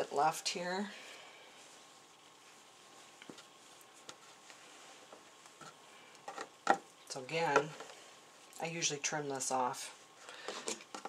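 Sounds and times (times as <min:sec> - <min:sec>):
fabric handling: 0:00.0 - 0:08.5.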